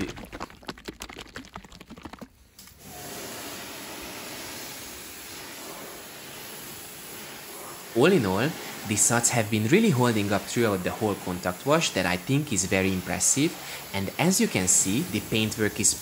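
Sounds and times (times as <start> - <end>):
liquid sloshing in shaken bottle: 0.0 - 2.5
pressure washer spray hissing: 2.6 - 16.0.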